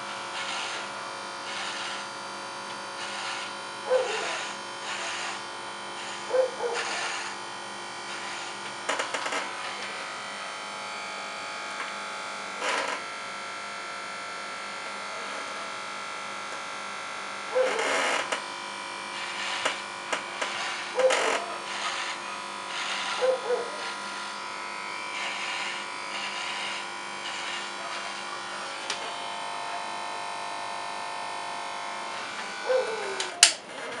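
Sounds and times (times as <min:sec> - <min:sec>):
electric hair clipper buzzing: 0:00.0 - 0:34.0.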